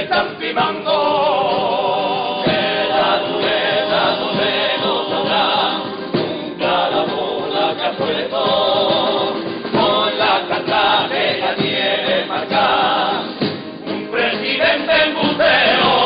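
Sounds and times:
men's choir singing in parts: 0.0s - 16.0s
strummed guitars: 0.0s - 16.0s.

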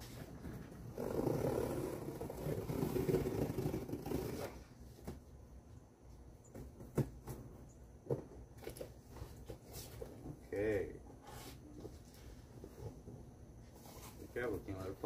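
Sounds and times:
tape being cut on cardboard: 0.0s - 5.2s.

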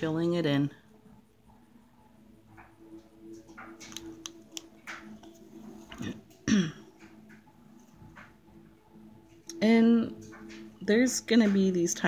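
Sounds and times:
faint steady hum: 0.0s - 12.0s
person coughing: 6.0s - 6.9s.

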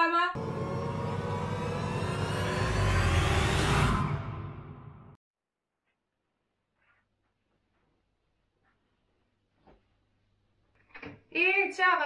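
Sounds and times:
deep rumble: 0.4s - 5.2s
rush of noise: 0.4s - 5.2s.

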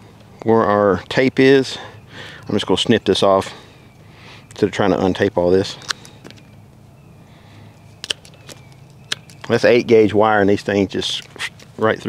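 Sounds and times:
wire cutters snipping wire: 5.7s - 6.4s.

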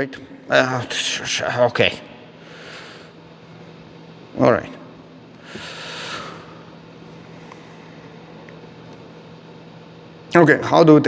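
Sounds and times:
steady low hum: 0.0s - 11.0s
breath into microphone: 5.5s - 6.6s.

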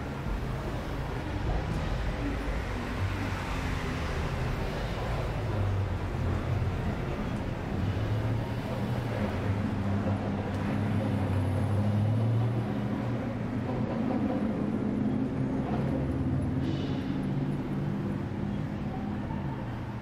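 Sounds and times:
street traffic: 0.0s - 20.0s.

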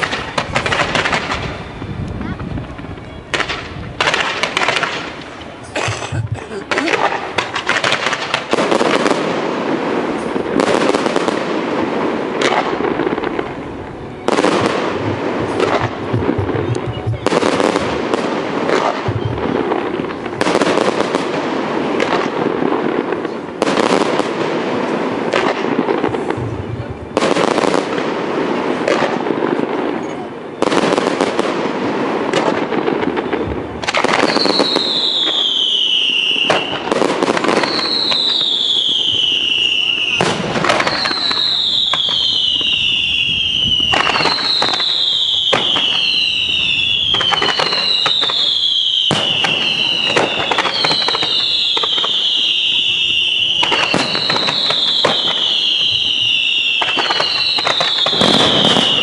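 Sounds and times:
falling firework whistles: 0.0s - 5.5s, 12.3s - 21.3s, 33.1s - 59.0s
firework bangs with crackling: 0.0s - 59.0s.

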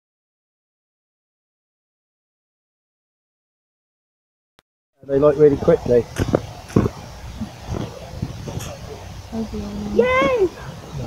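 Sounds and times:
short crackles and knocks: 6.1s - 9.0s.

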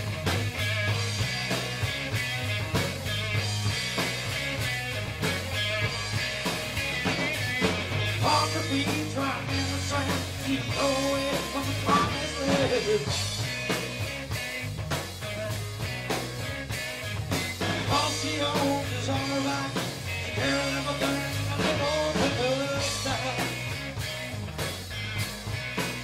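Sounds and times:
harmonica lead: 0.0s - 24.4s
drums: 0.0s - 26.0s
electric bass: 0.0s - 26.0s.

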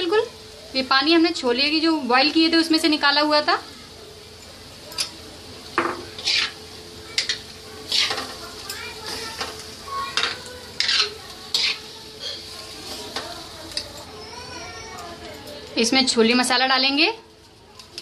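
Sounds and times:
sizzling food cooking: 0.0s - 18.0s
metal ladle scraping metal pan: 6.2s - 6.6s, 7.9s - 8.4s, 10.8s - 12.5s.

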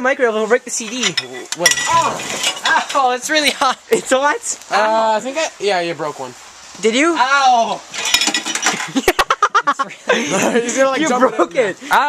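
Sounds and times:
hard objects clinking: 0.8s - 3.1s, 8.0s - 9.0s.

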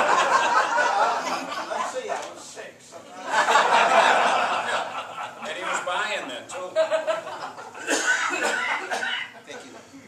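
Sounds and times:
voices chuckling and talking: 0.0s - 10.0s
person coughing: 7.8s - 9.3s.

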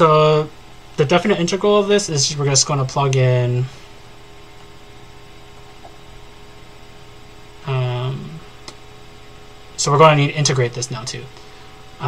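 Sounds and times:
man speaking: 0.0s - 3.8s, 7.6s - 8.5s, 9.8s - 11.4s
electrical mains hum: 0.0s - 12.0s.

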